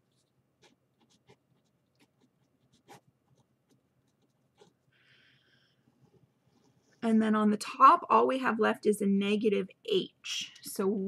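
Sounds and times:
pen scratching on paper: 0.1s - 4.8s.

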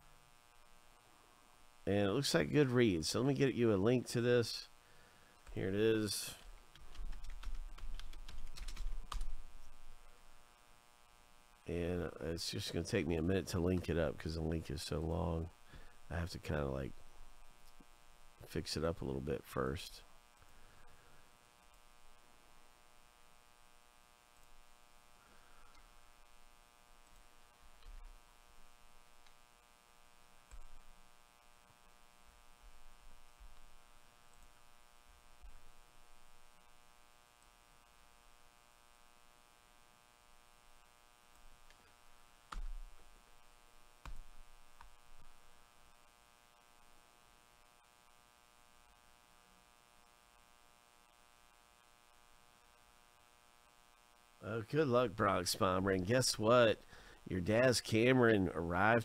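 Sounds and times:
faint mains hum: 0.0s - 59.0s.

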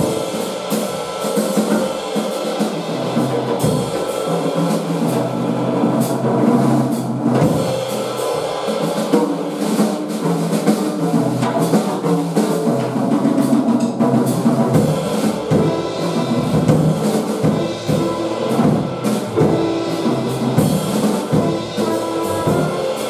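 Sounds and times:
pitched accompaniment: 0.0s - 4.3s, 15.0s - 23.0s
jazz drum kit playing: 0.0s - 23.0s.

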